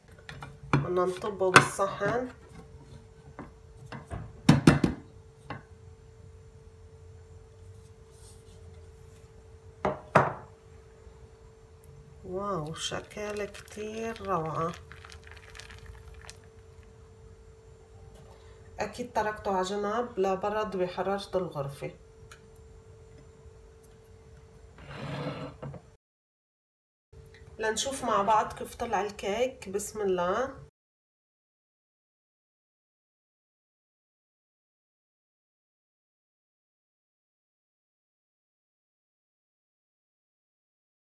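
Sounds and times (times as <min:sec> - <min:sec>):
steady hum: 0:05.1 - 0:24.8.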